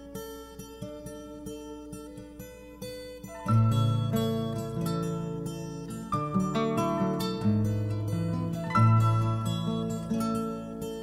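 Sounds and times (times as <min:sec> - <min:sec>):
plucked acoustic guitar notes: 0:00.0 - 0:11.0.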